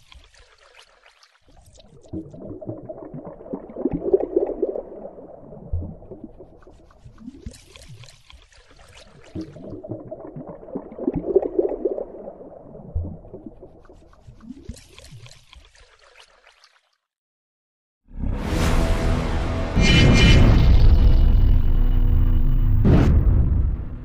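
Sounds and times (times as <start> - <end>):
underwater bubbling and gurgling: 0.0 - 16.2
higher fizzing bubbles: 0.0 - 16.9.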